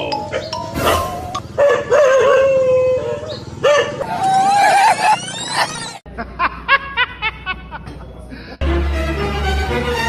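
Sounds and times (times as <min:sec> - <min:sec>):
dog howling: 0:00.8 - 0:05.2
background music: 0:08.6 - 0:10.0.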